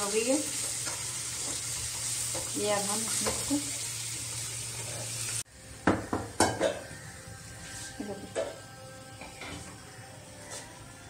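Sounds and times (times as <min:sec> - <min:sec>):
food sizzling in oil: 0:00.0 - 0:10.8
dishes clinking: 0:05.9 - 0:07.0, 0:08.3 - 0:09.8.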